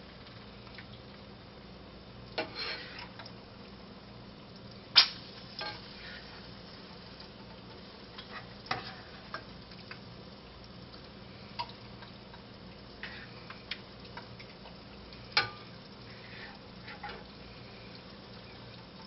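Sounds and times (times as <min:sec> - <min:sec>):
egg sizzling in a pan: 0:00.0 - 0:19.0
spoon scraping and clacking on skillet: 0:02.4 - 0:03.3, 0:05.0 - 0:06.4, 0:07.5 - 0:10.0, 0:13.0 - 0:17.3.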